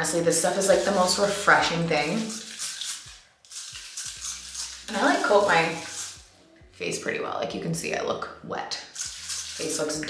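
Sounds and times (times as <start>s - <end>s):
aerosol spray hiss: 0.6s - 6.3s.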